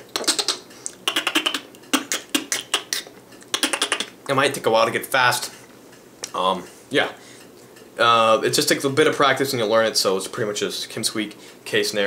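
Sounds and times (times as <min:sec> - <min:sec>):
beatbox clicks and snares: 0:00.0 - 0:04.5.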